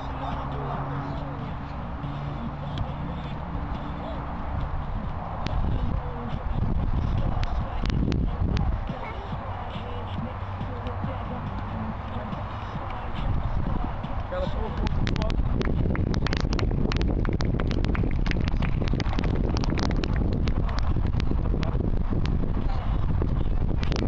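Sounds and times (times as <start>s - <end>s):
people talking: 0.0s - 4.7s, 5.4s - 15.4s, 22.6s - 23.5s.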